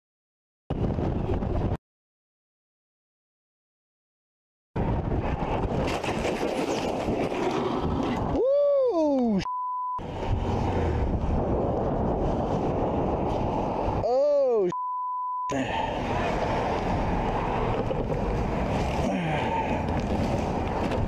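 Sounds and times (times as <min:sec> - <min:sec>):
wind rushing over helmet microphone: 0:00.7 - 0:01.8, 0:04.8 - 0:09.4, 0:10.0 - 0:14.3, 0:15.7 - 0:21.0
person crying out: 0:08.4 - 0:09.4, 0:14.0 - 0:14.7
censor bleep: 0:09.4 - 0:10.0, 0:14.7 - 0:15.5.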